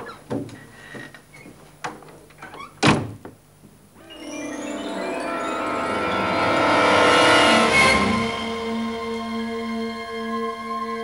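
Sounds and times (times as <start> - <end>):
door shutting with a thud: 2.7 - 3.4
background music: 4.0 - 11.0.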